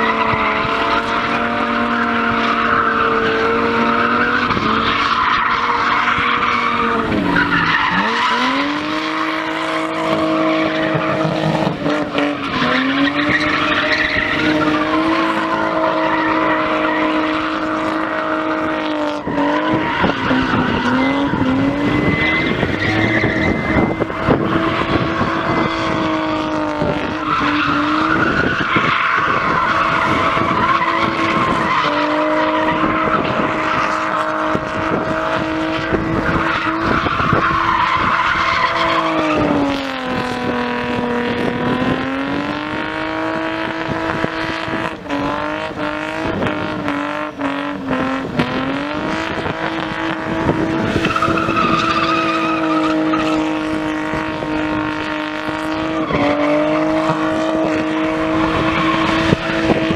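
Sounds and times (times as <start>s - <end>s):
tyres squealing: 0.0s - 34.6s, 50.9s - 59.9s
car engine at high revs: 0.0s - 59.9s.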